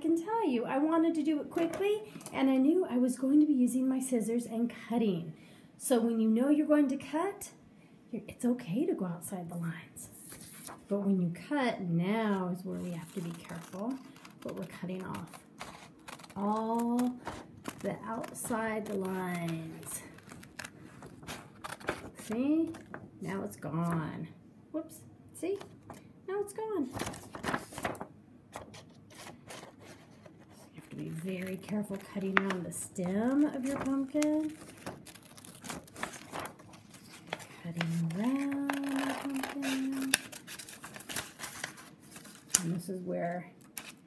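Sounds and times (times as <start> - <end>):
paper rustling: 12.7 - 23.0, 26.9 - 42.8
scissors snipping paper: 12.8 - 23.0, 28.6 - 42.7.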